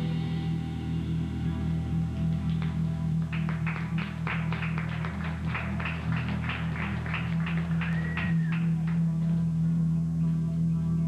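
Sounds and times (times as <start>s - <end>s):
rock band with amplified guitars: 0.0s - 10.7s.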